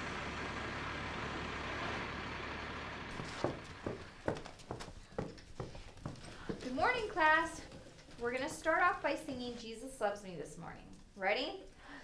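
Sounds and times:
bus engine idling: 0:00.0 - 0:04.4.

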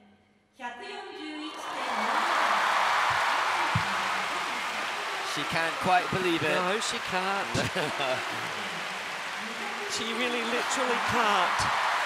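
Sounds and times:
crowd cheering and applauding: 0:01.5 - 0:12.0.

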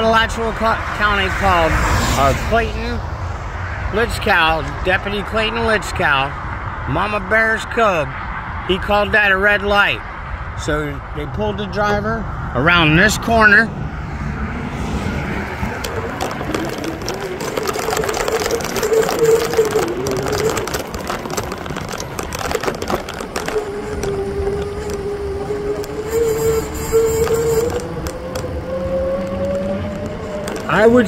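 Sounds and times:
road traffic: 0:00.0 - 0:31.0
vehicle engine rising in pitch: 0:12.0 - 0:31.0.

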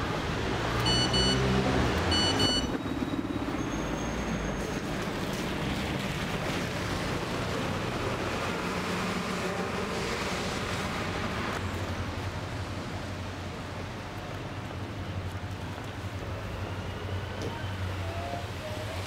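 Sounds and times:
cars passing on wet road: 0:00.0 - 0:02.8, 0:03.4 - 0:19.0
short high electronic beeps: 0:00.9 - 0:01.4, 0:02.1 - 0:02.8.

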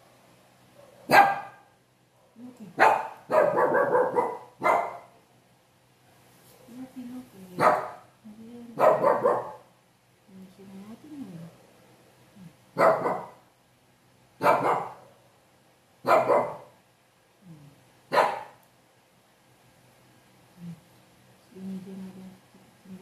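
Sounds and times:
small puppy barking: 0:00.8 - 0:01.8, 0:02.8 - 0:05.2, 0:07.6 - 0:08.1, 0:08.8 - 0:09.7, 0:12.8 - 0:13.4, 0:14.4 - 0:15.1, 0:16.0 - 0:16.8, 0:18.1 - 0:18.6.

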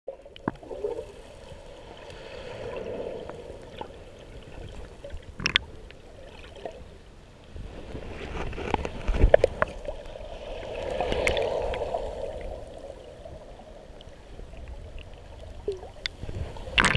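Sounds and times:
underwater wave wash: 0:00.1 - 0:16.9.

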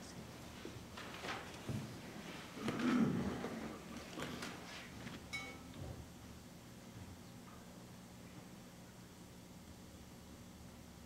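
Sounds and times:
short high ringing tone: 0:05.3 - 0:05.8.

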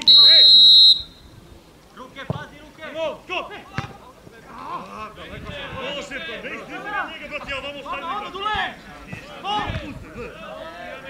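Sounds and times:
footballers shouting: 0:00.0 - 0:01.2, 0:02.2 - 0:11.0.

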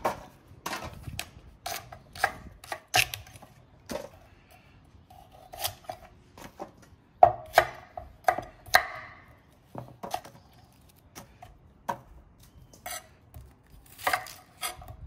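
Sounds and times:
knife chopping on wooden board: 0:05.5 - 0:10.4.

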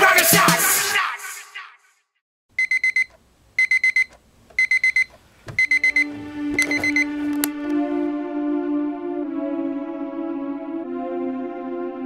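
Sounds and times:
alarm clock beeping: 0:02.6 - 0:07.2.

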